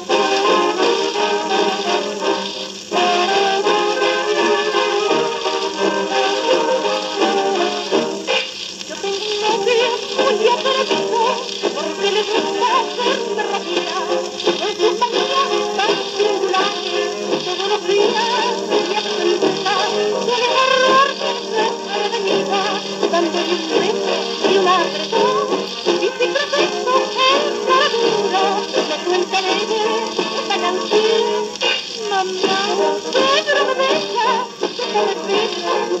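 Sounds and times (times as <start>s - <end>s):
jazz band on old record: 0.0s - 36.0s
record surface hiss: 0.0s - 36.0s
vocal refrain: 0.0s - 36.0s.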